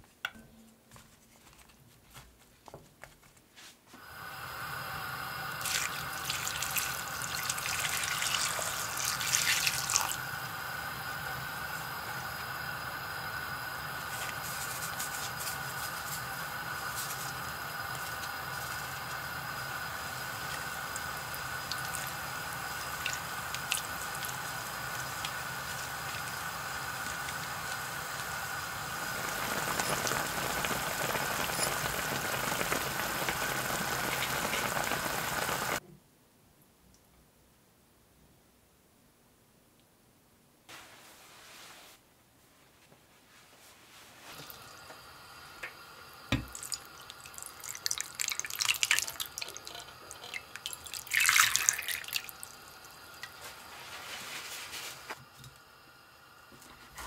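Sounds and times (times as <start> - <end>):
hot pot bubbling: 4.0 - 35.8, 44.3 - 57.0
liquid pouring into a pot: 4.4 - 12.6, 13.9 - 35.7, 46.1 - 54.7.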